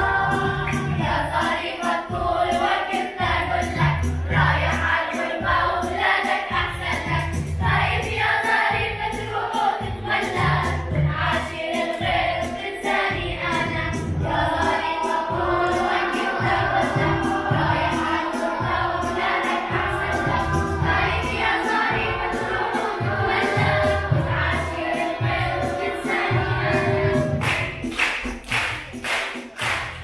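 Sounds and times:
children's choir singing: 0:00.0 - 0:30.0.

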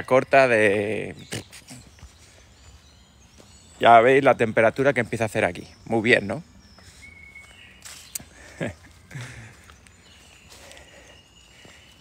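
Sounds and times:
faint forest ambience: 0:00.0 - 0:12.0
distant high bird calls: 0:05.6 - 0:12.0.

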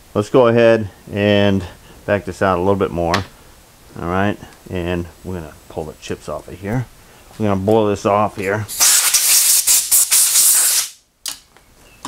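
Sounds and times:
compressed air blow gun hissing: 0:08.7 - 0:11.0.

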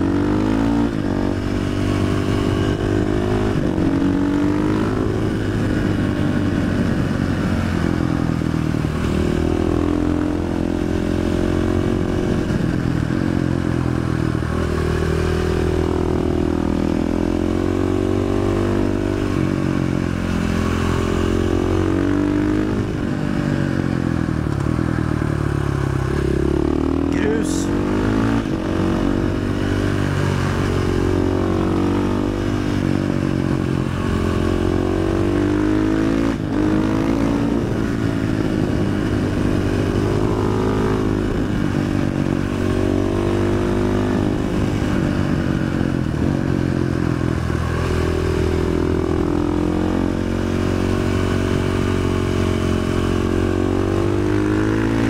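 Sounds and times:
motorcycle engine revving hard: 0:00.0 - 0:24.0, 0:25.4 - 0:55.0.

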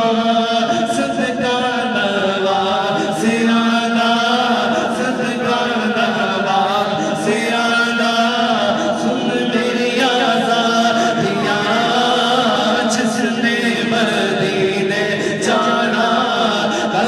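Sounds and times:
man singing unaccompanied: 0:00.0 - 0:17.0.

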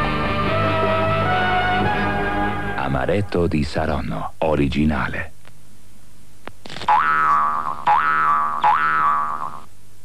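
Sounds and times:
cartoon springy boings: 0:06.7 - 0:09.7.

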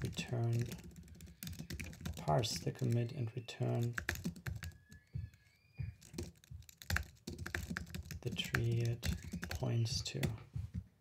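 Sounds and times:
keyboard typing: 0:00.0 - 0:10.9.

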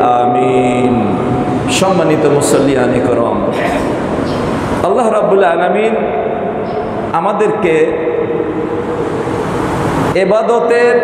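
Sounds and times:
steady rushing noise: 0:00.7 - 0:10.3.

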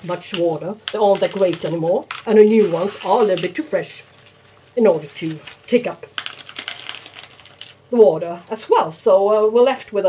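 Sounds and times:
clay pebbles clicking in plastic pot: 0:00.1 - 0:07.8.

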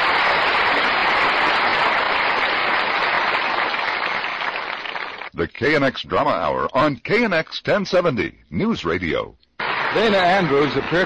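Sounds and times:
studio audience applauding: 0:00.0 - 0:05.4, 0:09.6 - 0:11.0.

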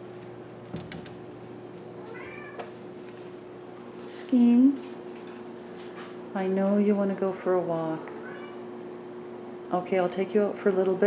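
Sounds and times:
kitten meowing: 0:02.0 - 0:02.6, 0:08.2 - 0:08.6.

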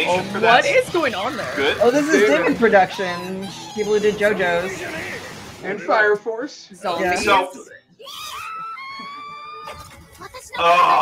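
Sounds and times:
drawn-out scream: 0:08.0 - 0:09.8.

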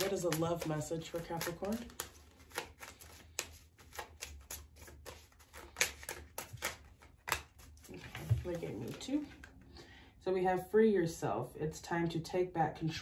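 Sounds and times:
cards being shuffled: 0:00.0 - 0:09.6.

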